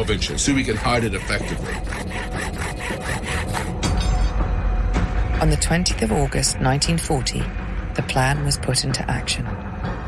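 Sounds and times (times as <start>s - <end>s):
saw cutting through wood: 0.0s - 4.0s.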